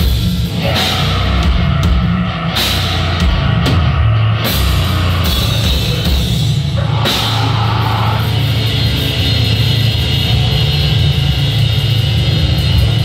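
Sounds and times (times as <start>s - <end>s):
drum kit: 0.0s - 13.0s
electric guitar: 0.0s - 13.0s.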